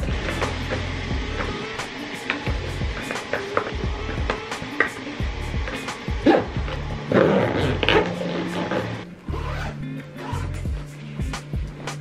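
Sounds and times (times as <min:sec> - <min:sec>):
background music with bass line: 0:00.0 - 0:12.0
zipper rasping: 0:06.2 - 0:10.7.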